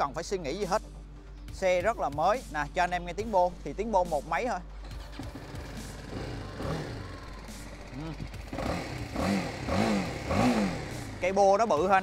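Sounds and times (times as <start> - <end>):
motorcycle engine idling and revving: 1.6 - 12.0.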